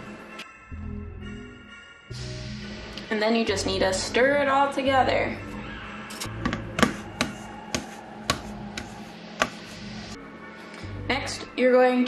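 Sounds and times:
soft background music: 0.0s - 12.0s
spatula knocking metal bowl: 6.3s - 9.6s.

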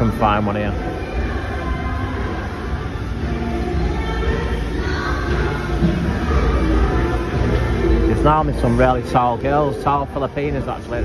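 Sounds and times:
faint background music: 0.0s - 11.0s
low rumble of indoor concourse: 0.0s - 11.0s.

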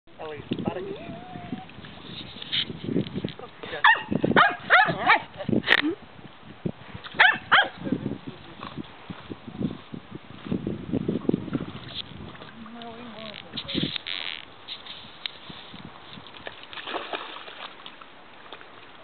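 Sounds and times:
dog barking excitedly: 3.8s - 5.3s, 7.2s - 7.8s.

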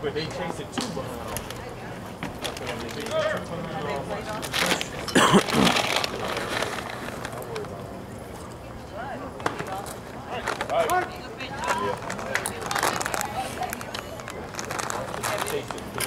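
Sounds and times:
outdoor background noise: 0.0s - 16.0s.

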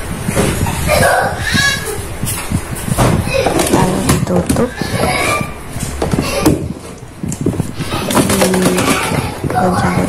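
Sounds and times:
plastic container handling: 2.9s - 10.0s.

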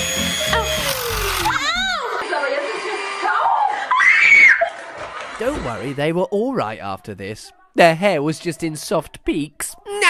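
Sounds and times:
electric hand mixer running: 0.0s - 2.1s
girl crying out: 1.3s - 2.2s.

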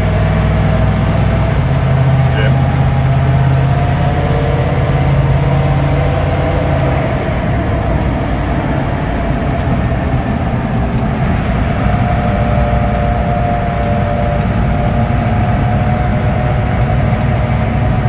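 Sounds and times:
steady whine: 0.0s - 18.0s
vehicle engine drone: 0.0s - 18.0s.

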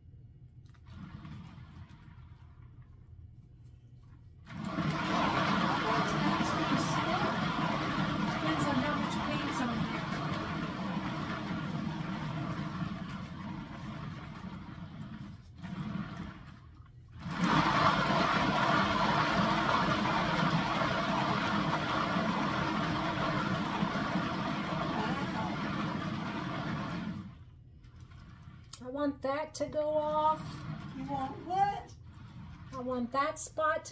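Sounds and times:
turntable motor whirring: 4.5s - 16.5s.

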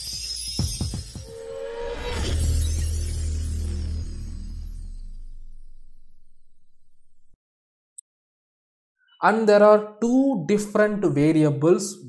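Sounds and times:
held tone with glassy shimmer: 0.0s - 7.3s
deep bass swell: 1.2s - 7.4s.

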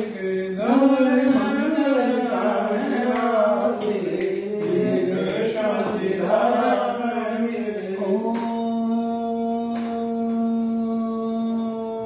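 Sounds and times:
man chanting: 0.0s - 12.0s.

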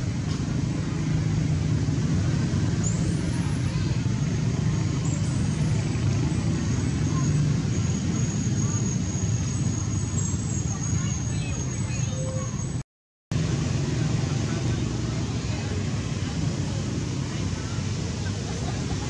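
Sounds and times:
low outdoor rumble: 0.0s - 19.0s.

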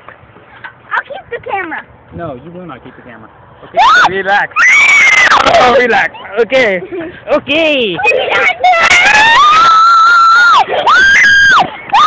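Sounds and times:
girl screaming: 3.8s - 5.8s, 8.0s - 12.0s.

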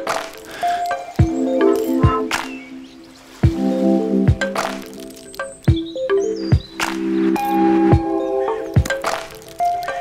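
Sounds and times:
held chords: 3.4s - 9.2s
crackling clicks: 4.5s - 5.7s, 8.8s - 10.0s
high chirp-like glide: 5.4s - 8.7s.

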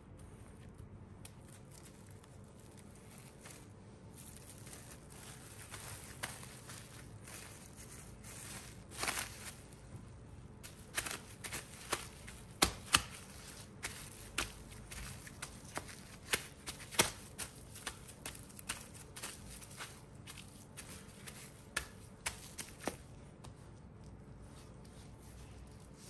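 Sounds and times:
plastic wrap crinkling: 0.2s - 23.2s.

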